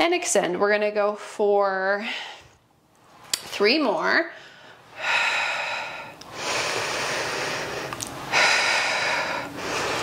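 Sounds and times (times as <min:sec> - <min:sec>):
woman breathing: 0:02.0 - 0:02.7, 0:04.3 - 0:10.0.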